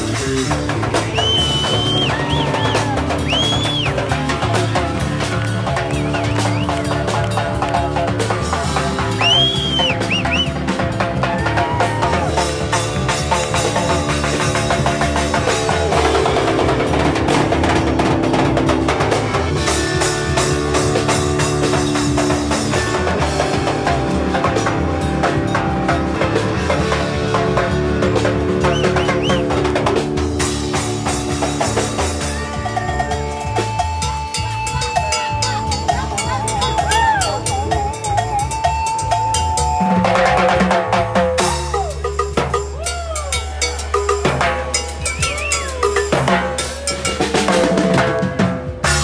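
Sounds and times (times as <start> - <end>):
electric guitar lead: 0.0 - 40.4
bass notes: 0.0 - 49.0
congas: 0.0 - 49.0
drum kit beat: 0.0 - 49.0.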